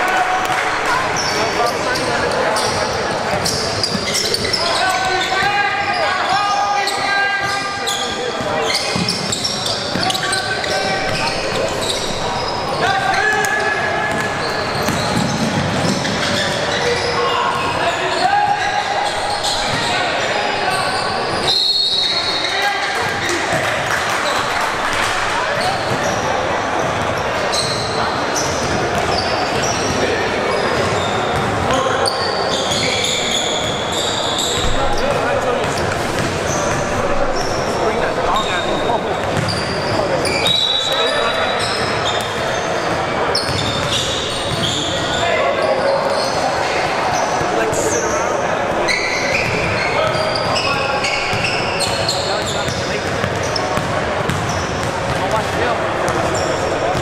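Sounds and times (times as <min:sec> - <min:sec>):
voices in a gym: 0:00.0 - 0:57.0.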